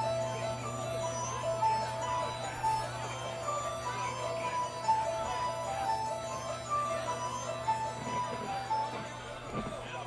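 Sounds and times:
simple electronic chime melody: 0.0s - 9.3s
amplifier hum: 0.0s - 10.0s.

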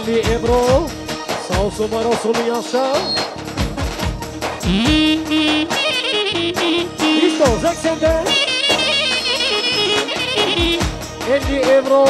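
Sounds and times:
steady bass notes: 0.0s - 2.3s, 2.9s - 11.8s
drum strokes: 0.2s - 11.9s
ornamented high melody: 4.6s - 10.9s.

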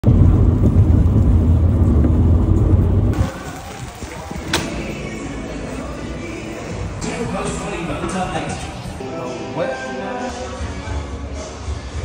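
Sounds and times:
car road and engine rumble: 0.0s - 3.3s.

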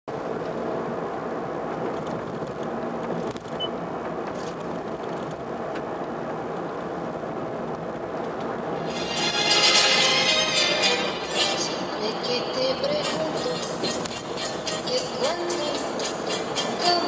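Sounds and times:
car road and engine noise: 0.1s - 17.0s.

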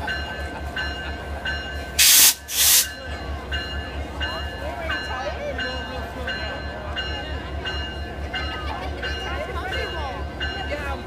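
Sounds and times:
low pulsing train rumble: 0.0s - 11.0s
train bell ringing: 0.0s - 11.0s
loud hissing bursts: 2.0s - 2.9s.

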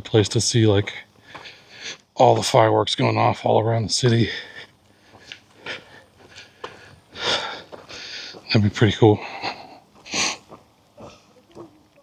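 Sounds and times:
man sniffing: 9.2s - 11.3s.

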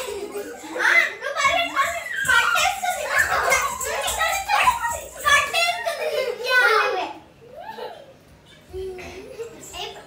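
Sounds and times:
children shouting while playing: 0.0s - 8.0s.

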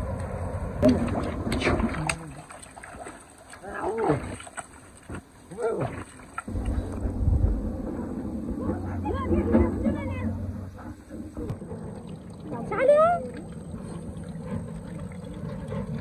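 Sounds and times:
steady low rumble: 0.0s - 2.4s, 6.5s - 16.0s.

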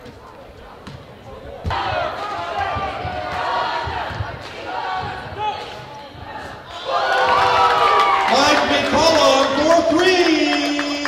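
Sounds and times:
voices shouting and cheering: 1.7s - 11.0s.

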